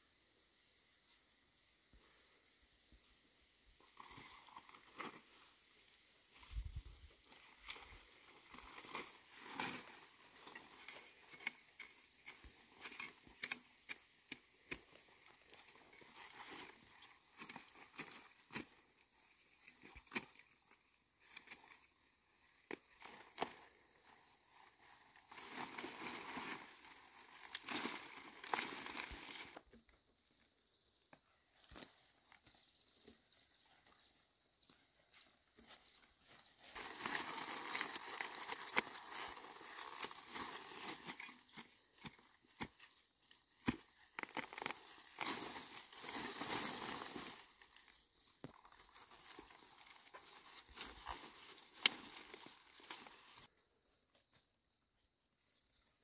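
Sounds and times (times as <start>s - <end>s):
dry grass and leaves rustling: 0.0s - 54.6s
weeds tearing: 6.5s - 29.7s, 36.3s - 53.5s.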